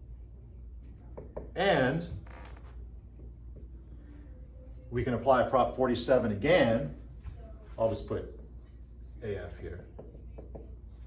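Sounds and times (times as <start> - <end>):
low room hum: 0.0 - 11.0
marker drawing on whiteboard: 0.9 - 4.3, 5.1 - 11.0.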